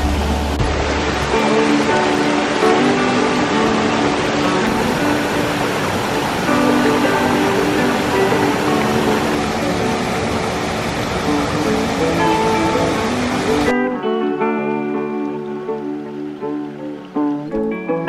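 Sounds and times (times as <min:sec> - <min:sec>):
stream rushing over waterfalls: 0:00.0 - 0:13.8
background music sustained notes: 0:00.0 - 0:18.0.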